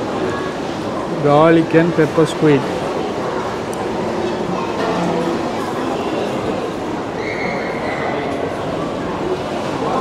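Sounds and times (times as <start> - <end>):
crowd and room noise: 0.0 - 10.0.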